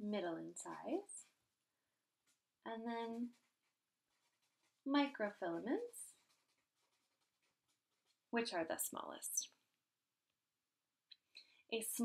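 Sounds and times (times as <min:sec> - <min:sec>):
marker scratching on paper: 0:02.2 - 0:09.0.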